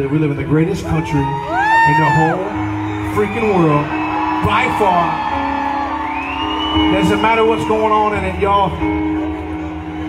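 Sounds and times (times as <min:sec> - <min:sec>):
band holding soft chords: 0:00.0 - 0:10.0
crowd whooping: 0:00.8 - 0:10.0.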